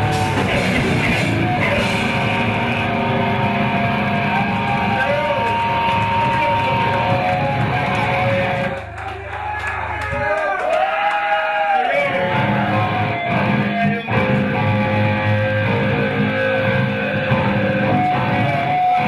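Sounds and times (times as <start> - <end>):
heavy metal band playing live: 0.0 - 8.8, 12.0 - 19.0.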